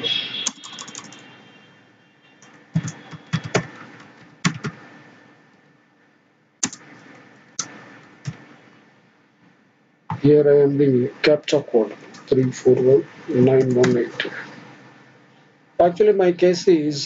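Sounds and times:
computer keyboard clicks: 0.4s - 1.2s, 2.4s - 3.8s, 4.4s - 4.8s, 6.6s - 6.9s.

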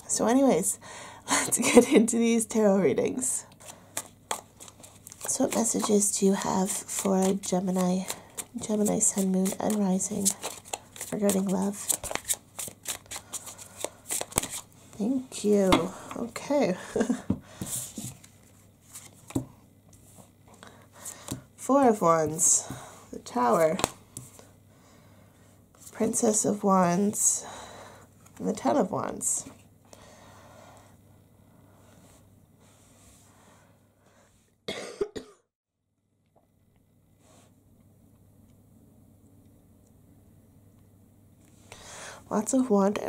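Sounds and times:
cards being shuffled: 3.9s - 14.7s
person coughing: 34.7s - 35.5s.

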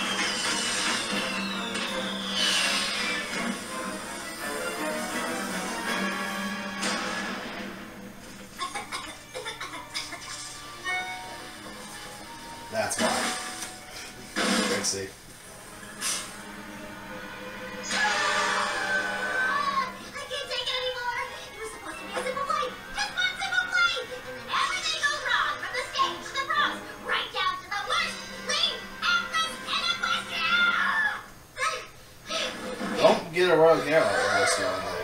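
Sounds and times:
crashing sound effects: 0.0s - 3.7s, 6.8s - 7.8s, 14.4s - 14.9s
cartoon background music: 0.0s - 31.3s, 32.3s - 35.0s.

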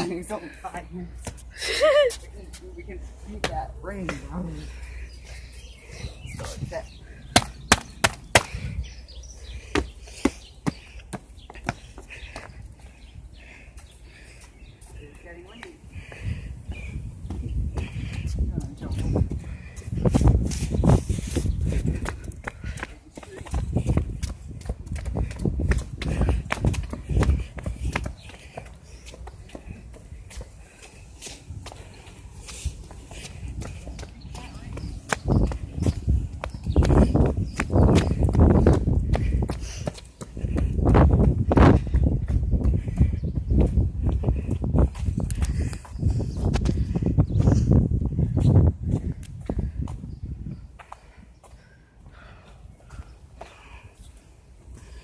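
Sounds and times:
running footsteps on concrete: 0.0s - 55.0s
microphone rumbling and thumps: 16.0s - 22.7s, 40.3s - 50.4s.

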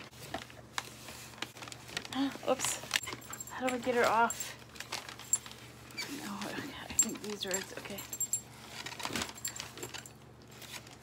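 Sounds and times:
packaging rustle: 0.0s - 11.0s
metallic jingling clinks: 6.9s - 8.6s.

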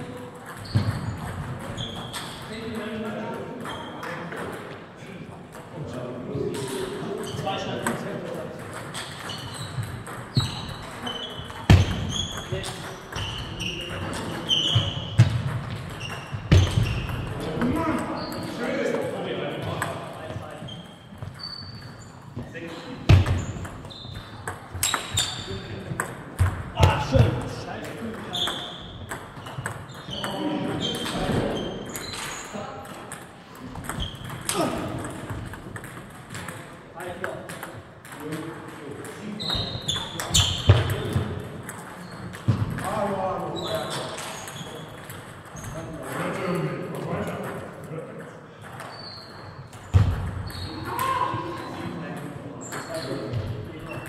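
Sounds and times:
table tennis balls clicking: 7.8s - 14.7s, 23.3s - 26.9s, 27.8s - 43.0s.

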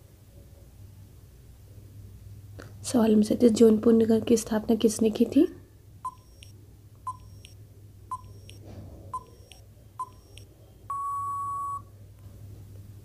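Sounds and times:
short electronic beeps: 6.1s - 8.6s, 9.2s - 11.9s
long electronic beep: 9.2s - 11.9s.

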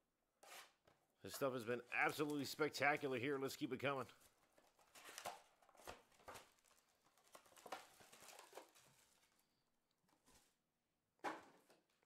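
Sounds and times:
plastic wrapper crinkling: 4.4s - 9.5s.

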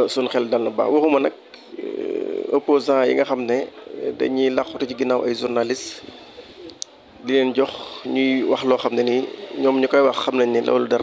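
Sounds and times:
man speaking into microphone: 0.0s - 6.1s, 7.2s - 11.0s.

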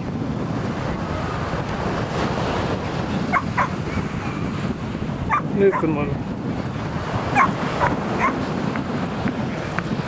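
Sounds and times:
wind on microphone: 0.0s - 10.0s
dog yipping: 5.3s - 5.9s, 7.4s - 8.4s.

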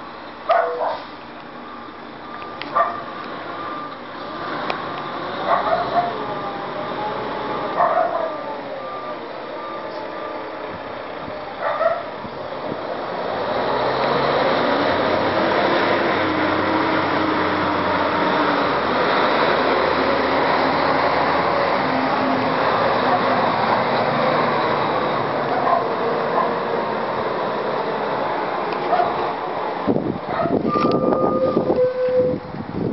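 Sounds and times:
dog barking: 0.5s - 1.1s, 2.7s - 3.1s, 5.5s - 6.2s, 7.8s - 8.4s, 11.6s - 12.1s, 25.6s - 26.6s, 28.9s - 29.2s, 30.3s - 30.6s
truck diesel engine driving past: 1.0s - 30.3s
backup beeper: 30.7s - 32.4s.

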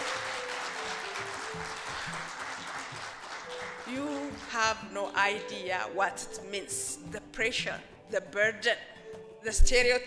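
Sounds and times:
audience applauding: 0.0s - 4.6s
low sustained background music: 0.0s - 10.0s.

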